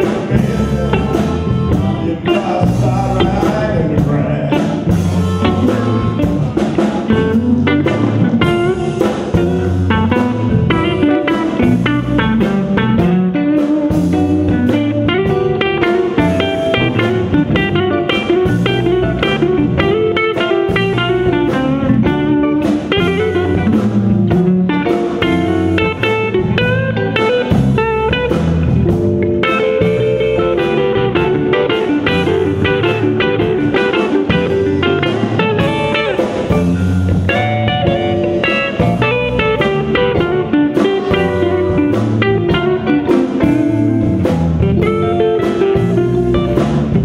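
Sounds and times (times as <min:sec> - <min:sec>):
blues band playing live: 0:00.0 - 0:47.0
electric guitar lead runs: 0:00.0 - 0:47.0.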